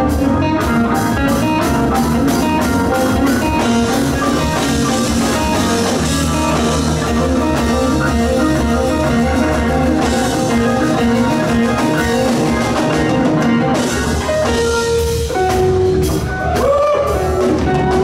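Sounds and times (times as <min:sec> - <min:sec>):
organ: 0:00.0 - 0:14.8
bass guitar: 0:00.0 - 0:18.0
drum kit: 0:00.0 - 0:18.0
electric guitar: 0:00.0 - 0:18.0.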